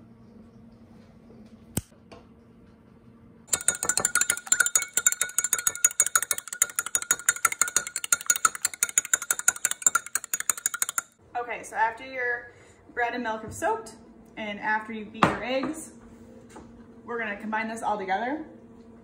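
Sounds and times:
fork beating eggs in glass cup: 3.5 - 11.2.

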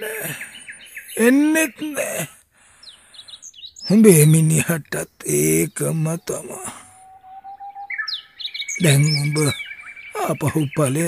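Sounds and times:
person speaking: 0.0 - 2.4, 3.9 - 7.0, 8.8 - 9.6, 10.2 - 11.0
bird chirps: 0.0 - 11.0
bird whistling: 5.8 - 11.0.

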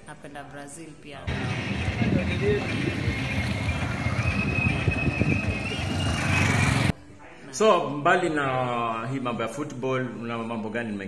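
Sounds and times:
voices: 1.2 - 6.9
vehicle noise: 1.3 - 6.9.

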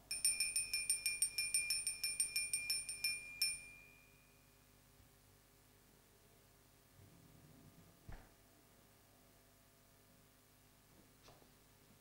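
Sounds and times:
small altar bell ringing: 0.0 - 4.8.

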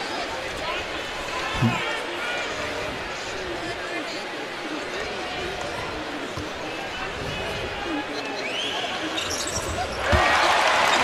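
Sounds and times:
arena crowd murmuring: 0.0 - 11.0.

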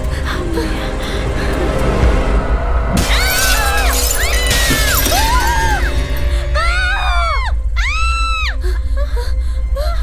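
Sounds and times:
low rumbling horror score: 0.0 - 10.0
glass shattering: 3.0 - 6.2.

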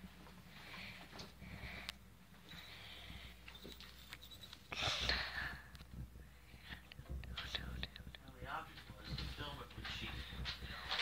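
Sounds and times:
person whispering: 6.6 - 8.4.

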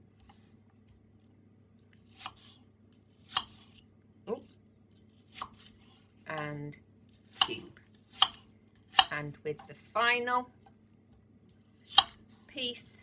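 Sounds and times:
knife cutting on chopping board: 2.1 - 2.6, 3.2 - 3.8, 5.1 - 6.1, 7.2 - 9.1, 11.8 - 12.2.

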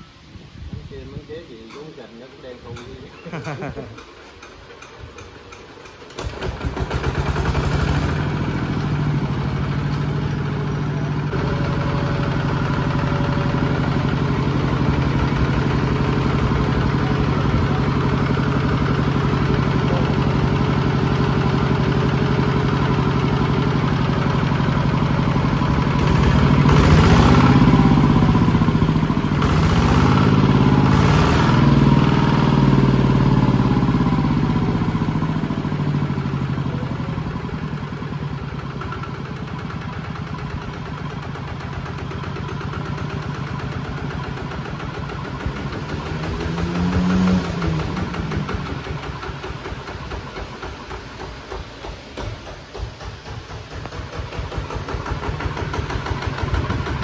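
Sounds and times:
diesel engine revving and idling: 6.0 - 57.0.

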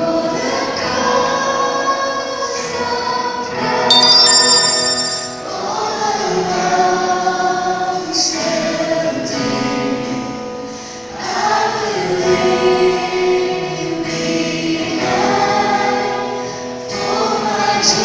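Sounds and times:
worship band playing slow song: 0.0 - 18.0
bright high ringing run: 3.9 - 5.7
women singing: 11.2 - 18.0.

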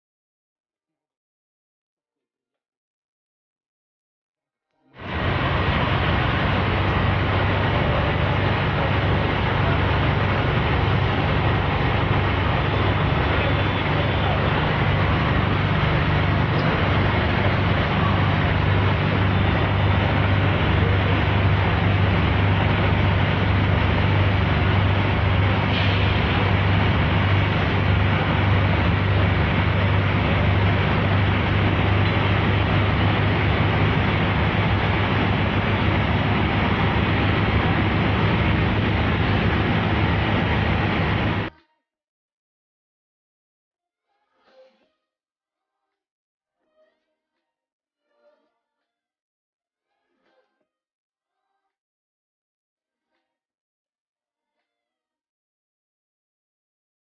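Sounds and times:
fire truck engines running: 5.0 - 41.5
street noise: 5.0 - 41.5.

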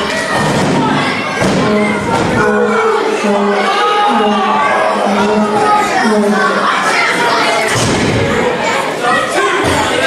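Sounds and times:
crowd shouting and chanting: 0.0 - 10.0.

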